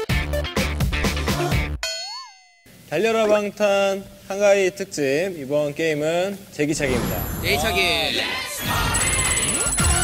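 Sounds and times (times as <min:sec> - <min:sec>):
background music with a beat: 0:00.0 - 0:01.8, 0:08.7 - 0:10.0.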